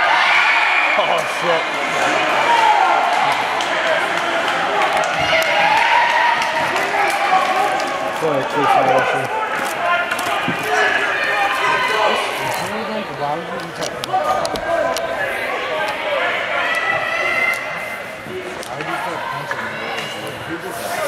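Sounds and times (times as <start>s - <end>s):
people talking and calling out: 0.0s - 21.0s.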